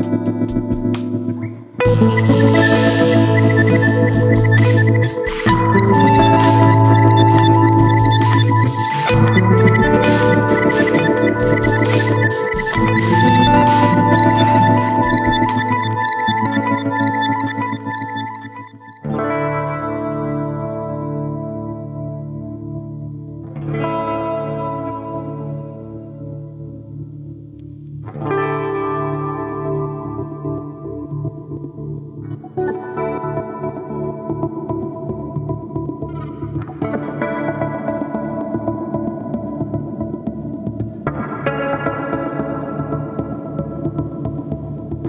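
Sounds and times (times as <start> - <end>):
pulsing chopped electric guitar chords: 0.0 - 45.0.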